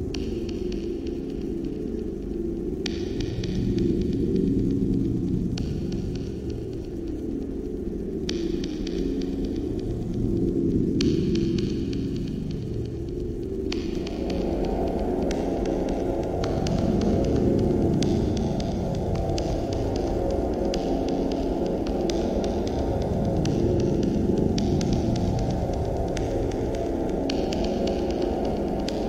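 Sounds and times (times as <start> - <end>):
low shifting drone: 3.4 - 29.0.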